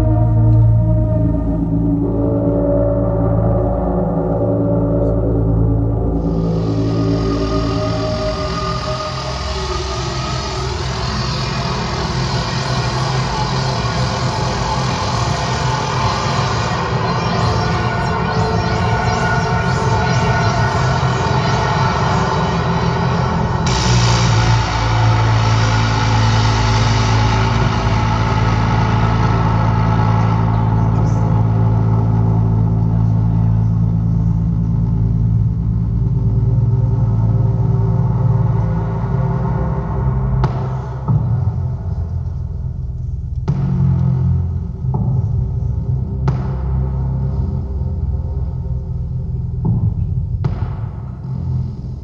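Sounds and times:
synthesizer chords: 0:00.0 - 0:42.9
deep bass drone: 0:00.0 - 0:52.0.

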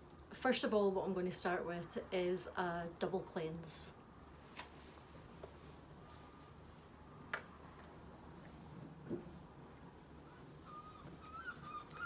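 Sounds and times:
rubber gloves squeaking: 0:10.3 - 0:12.0.

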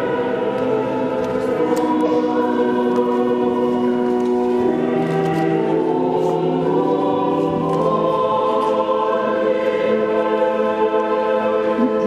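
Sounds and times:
choir singing long chords: 0:00.0 - 0:12.0.

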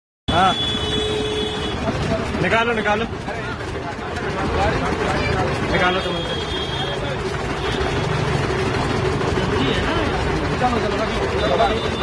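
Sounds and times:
busy street noise: 0:00.3 - 0:12.0.

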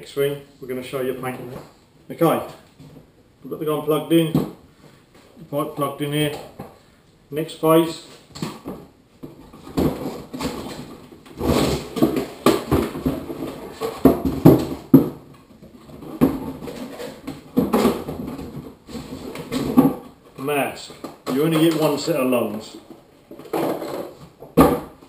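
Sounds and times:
packaging scraping and rustling: 0:15.7 - 0:20.1.

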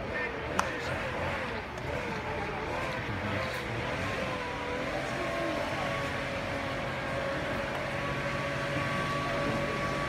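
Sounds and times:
outdoor background rumble: 0:00.0 - 0:10.0.

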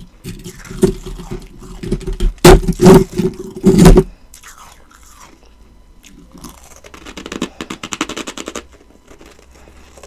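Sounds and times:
ice being chewed: 0:00.2 - 0:07.0.

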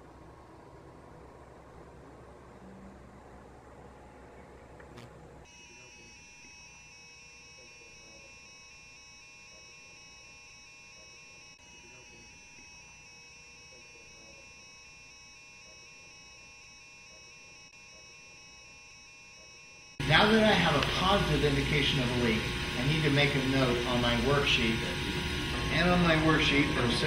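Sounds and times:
leak detector alarm warble: 0:05.4 - 0:27.0.

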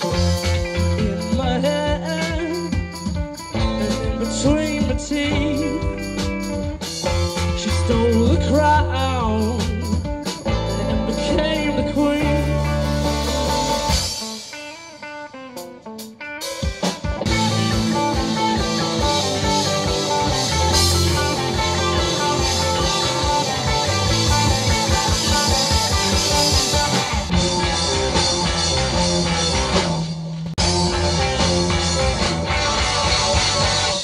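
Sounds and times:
bass guitar: 0:00.0 - 0:34.0
drum kit: 0:00.0 - 0:34.0
electric guitars: 0:00.0 - 0:34.0.

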